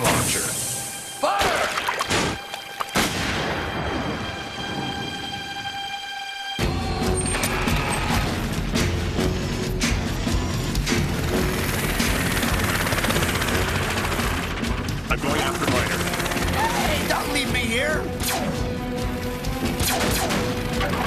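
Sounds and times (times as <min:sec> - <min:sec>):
cartoon soundtrack music: 0:00.0 - 0:21.0.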